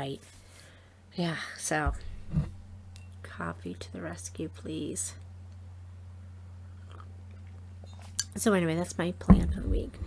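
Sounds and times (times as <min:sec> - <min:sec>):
steady low hum: 0:00.0 - 0:10.0
person sipping and swallowing: 0:06.8 - 0:07.1.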